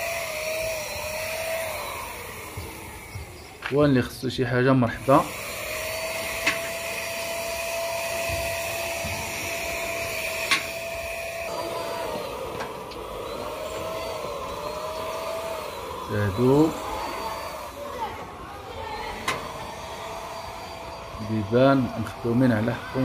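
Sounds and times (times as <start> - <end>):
motor whining: 0.0 - 23.0.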